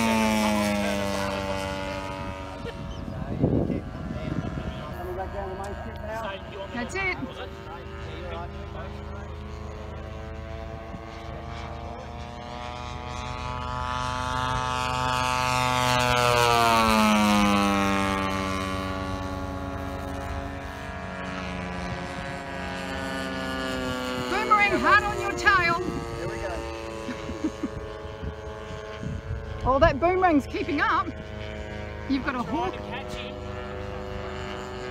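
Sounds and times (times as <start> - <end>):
model airplane engine flying past: 0.0 - 34.9.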